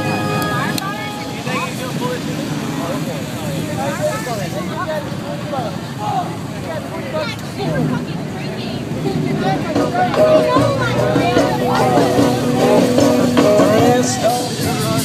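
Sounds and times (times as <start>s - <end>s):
music from a stereo: 0.0s - 1.3s, 9.6s - 15.0s
crowd shouting: 0.0s - 4.6s, 9.1s - 14.9s
truck engines rumbling: 0.0s - 15.0s.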